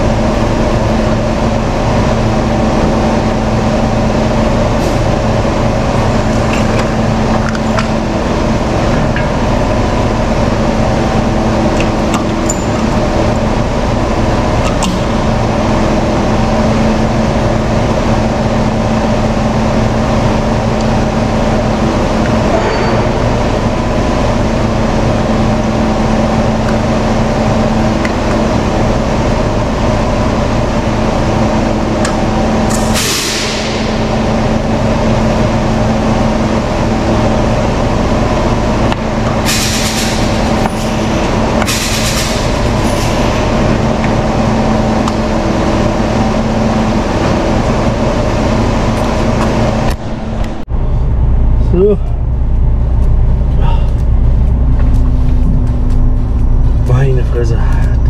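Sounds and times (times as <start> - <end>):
diesel truck engine idling: 0.0 - 58.0.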